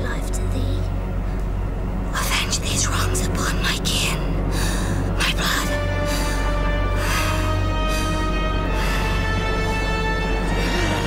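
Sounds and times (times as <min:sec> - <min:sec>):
low droning score music: 0:00.0 - 0:11.0
woman whispering: 0:02.2 - 0:04.4, 0:05.2 - 0:05.8.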